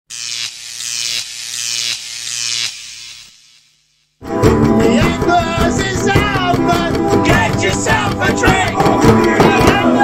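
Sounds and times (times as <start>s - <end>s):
buzzing sound effect: 0.1s - 4.6s.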